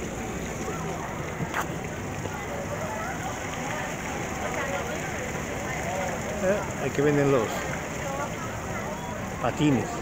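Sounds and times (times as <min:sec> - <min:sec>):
city hum: 0:00.0 - 0:10.0
indistinct chatter of people: 0:00.0 - 0:10.0.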